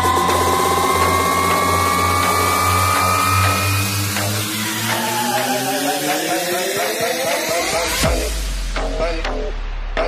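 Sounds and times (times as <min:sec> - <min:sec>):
synth tone rising in pitch: 0:00.0 - 0:07.9
pulsing bass: 0:00.0 - 0:10.0.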